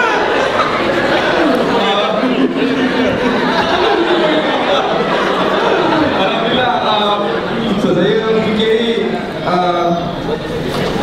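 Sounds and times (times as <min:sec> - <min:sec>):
audience chatter: 0:00.0 - 0:11.0
man talking into microphone: 0:06.1 - 0:10.2.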